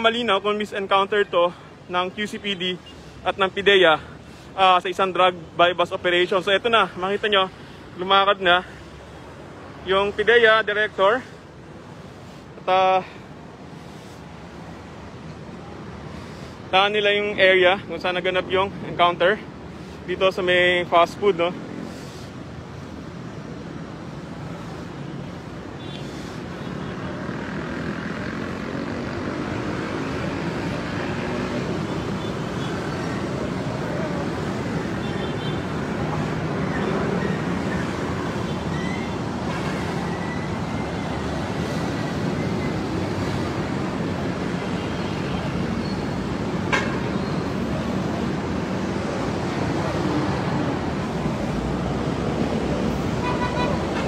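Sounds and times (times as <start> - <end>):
street traffic: 0.0 - 54.0.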